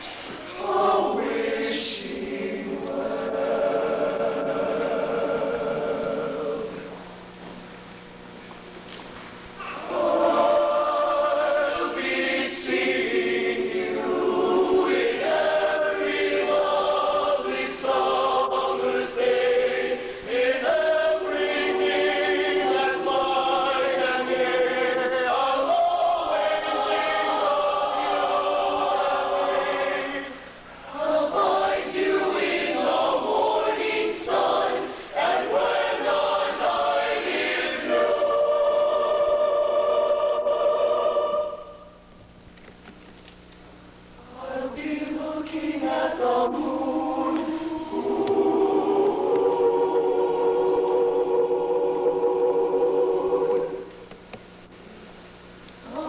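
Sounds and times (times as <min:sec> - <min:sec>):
mixed choir singing: 0:00.0 - 0:07.0, 0:09.6 - 0:42.0, 0:44.2 - 0:54.2.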